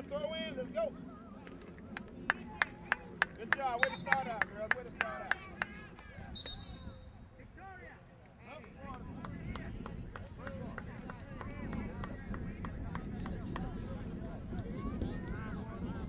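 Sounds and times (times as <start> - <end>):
wind rumble on microphone: 8.5 - 16.0.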